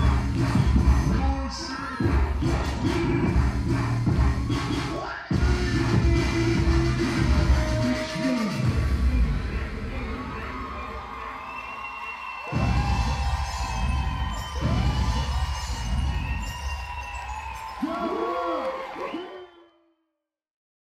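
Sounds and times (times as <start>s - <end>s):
rap dance track with deep bass: 0.0s - 19.4s
audience cheering and shrieking: 5.3s - 19.6s.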